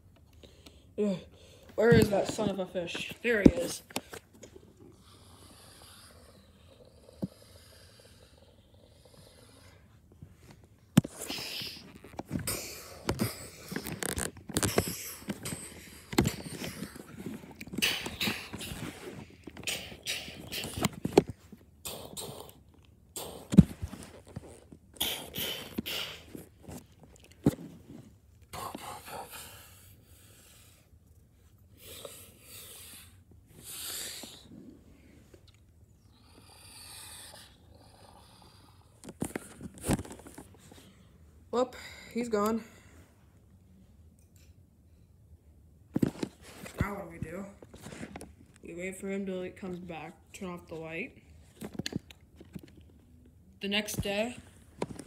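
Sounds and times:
breathy mouth noises: 3.5 - 27.4.

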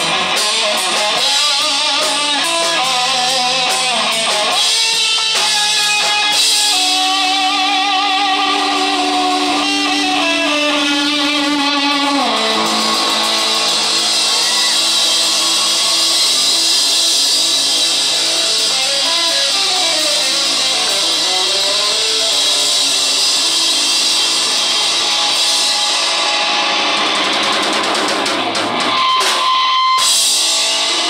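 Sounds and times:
live rock band playing: 0.0 - 31.0.

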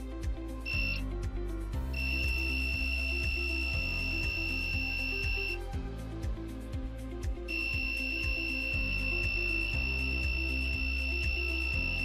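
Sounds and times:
background music with steady beat: 0.0 - 12.0
high-pitched buzzer tone: 0.7 - 1.0, 1.9 - 5.6, 7.5 - 12.0.

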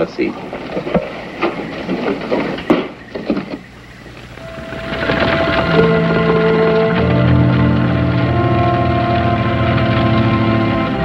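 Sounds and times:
film score with held notes: 0.0 - 11.0
footsteps on wooden boards: 0.0 - 11.0.

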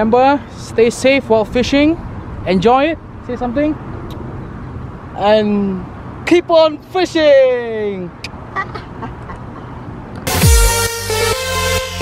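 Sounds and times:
man laughing: 8.4 - 9.9.

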